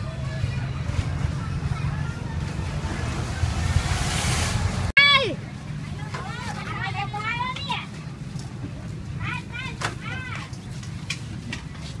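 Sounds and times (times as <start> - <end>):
distant voices talking: 0.0 - 10.7
low rumble: 0.1 - 5.8
rush of hiss: 3.2 - 4.9.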